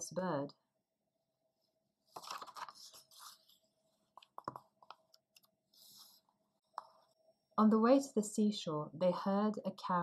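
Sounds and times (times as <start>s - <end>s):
book pages rustling: 2.0s - 6.2s.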